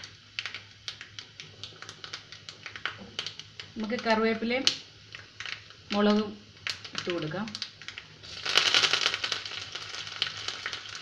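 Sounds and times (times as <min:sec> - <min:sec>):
liquid boiling with pops: 0:00.0 - 0:11.0.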